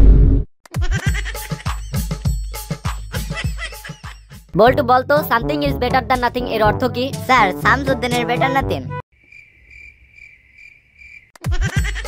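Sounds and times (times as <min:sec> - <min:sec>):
cricket chirping: 0:09.1 - 0:11.3.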